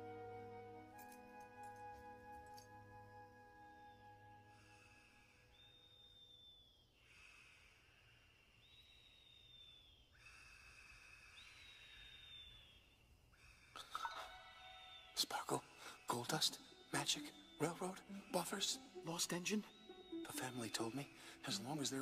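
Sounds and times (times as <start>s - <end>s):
soft orchestral music: 0.0s - 4.8s, 15.2s - 22.0s
whistling breath out: 4.4s - 15.1s, 21.1s - 21.5s
man breathing in sleep: 7.0s - 9.3s, 10.1s - 12.4s.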